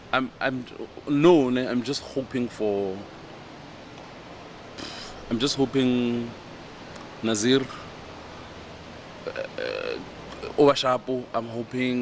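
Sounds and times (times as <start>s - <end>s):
man speaking: 0.1s - 3.1s, 5.2s - 6.4s, 7.2s - 7.9s, 9.2s - 12.0s
man's throaty vocal sound: 9.2s - 10.6s.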